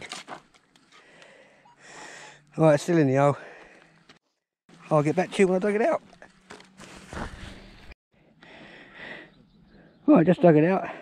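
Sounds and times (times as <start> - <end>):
loose earth crunching: 3.5 - 8.0
digging tool scraping soil: 4.8 - 7.9.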